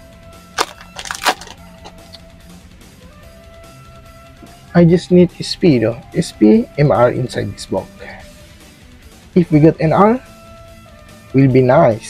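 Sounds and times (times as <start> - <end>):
faint background music: 0.0 - 12.0
foil wrapper crackling: 0.6 - 1.6.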